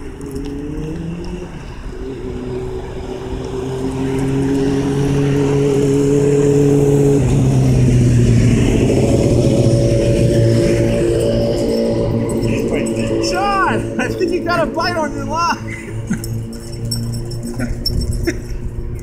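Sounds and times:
engine running: 0:00.0 - 0:19.0.

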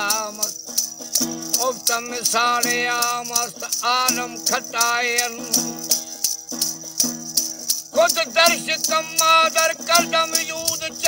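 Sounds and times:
person singing: 0:00.0 - 0:00.6, 0:01.5 - 0:06.0, 0:07.9 - 0:11.0.

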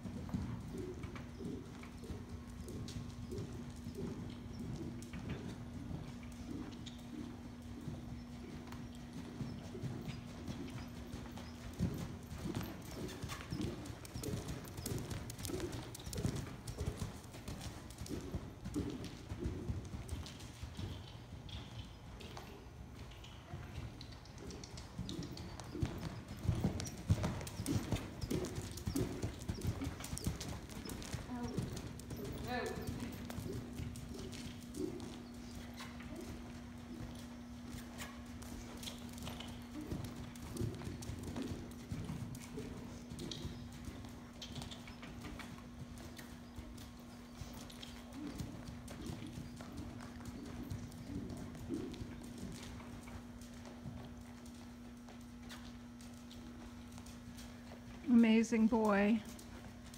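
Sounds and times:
horse hoofbeats on sand: 0:00.0 - 0:59.9.

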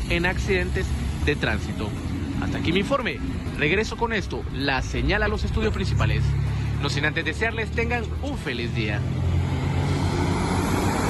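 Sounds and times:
tyres hissing on road: 0:00.0 - 0:04.0, 0:05.7 - 0:07.2, 0:07.9 - 0:11.0
bus engine drone: 0:00.0 - 0:11.0.

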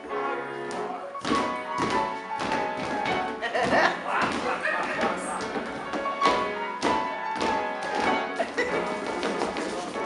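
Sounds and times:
stage musical accompaniment: 0:00.0 - 0:10.0
feet stomping on stage floor: 0:01.2 - 0:10.0.

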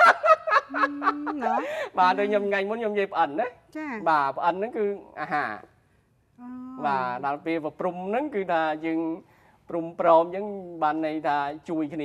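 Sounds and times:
person chuckling: 0:00.2 - 0:01.8
person speaking: 0:00.7 - 0:04.1, 0:06.5 - 0:07.5.

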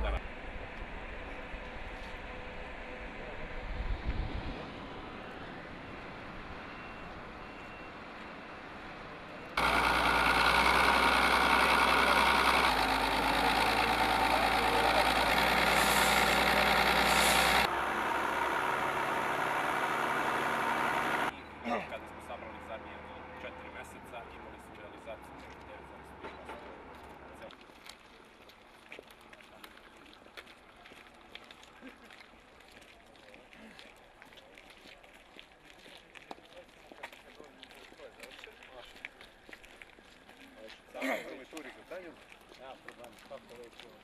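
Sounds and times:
construction machinery engine running: 0:08.5 - 0:21.4.

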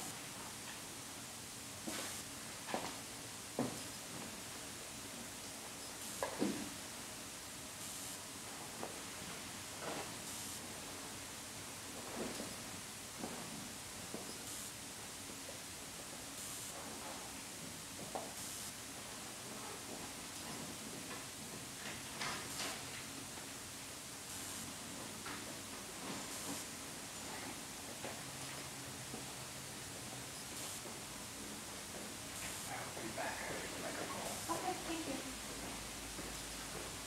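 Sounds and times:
steady hiss: 0:00.0 - 0:37.0.

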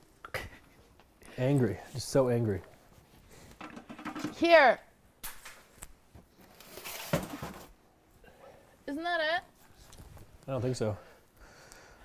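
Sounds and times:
rustling and handling noise: 0:05.3 - 0:08.2, 0:09.4 - 0:10.9.

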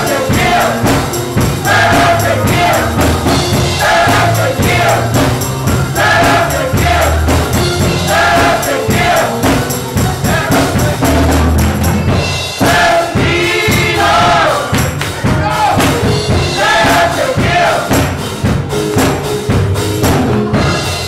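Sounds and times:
gospel choir singing: 0:00.0 - 0:18.7
band playing with bass: 0:00.0 - 0:21.0.

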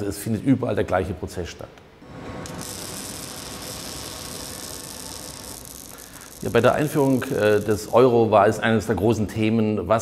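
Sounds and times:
arc welding crackling hiss: 0:02.1 - 0:09.0.

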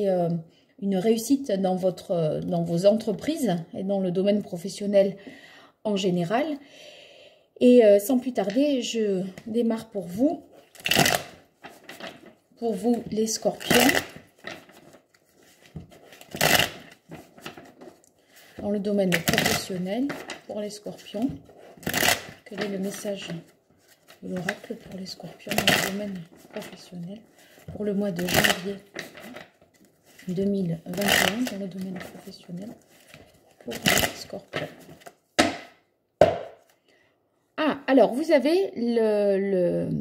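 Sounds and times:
card deck knocking on cloth table: 0:35.4 - 0:36.7.

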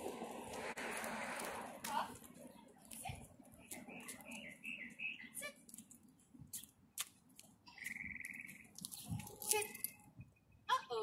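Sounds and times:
small birds chirping: 0:02.4 - 0:06.9, 0:07.6 - 0:10.7
bird trill: 0:03.6 - 0:05.4, 0:07.7 - 0:08.8.

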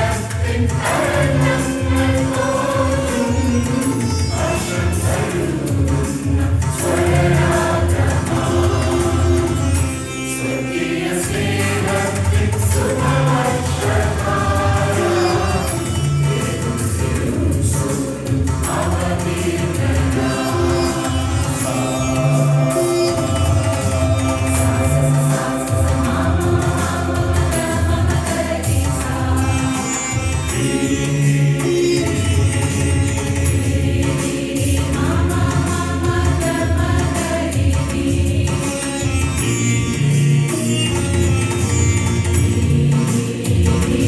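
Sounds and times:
mixed choir singing: 0:00.0 - 0:32.1, 0:33.4 - 0:40.1, 0:42.3 - 0:44.0.

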